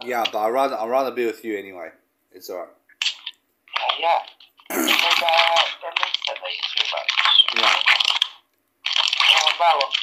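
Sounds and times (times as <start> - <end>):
people talking: 3.8 - 7.9, 9.2 - 10.0.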